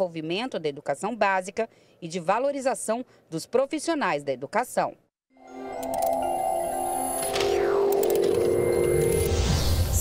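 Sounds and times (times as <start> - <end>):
synthesizer jingle chords: 5.3 - 10.0
falling synth sweep: 6.9 - 10.0.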